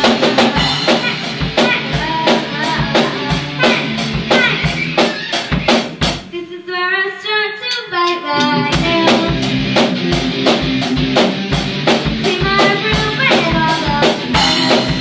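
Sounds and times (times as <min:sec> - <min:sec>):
girl singing: 0:00.0 - 0:05.7, 0:06.3 - 0:09.4, 0:12.2 - 0:14.4
drum kit beat: 0:00.0 - 0:06.4, 0:07.7 - 0:15.0
electric guitar: 0:08.2 - 0:15.0.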